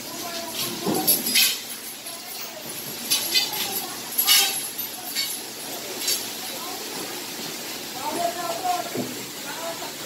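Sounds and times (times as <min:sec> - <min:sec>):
metal trolleys rattling on rail: 0:00.0 - 0:07.1.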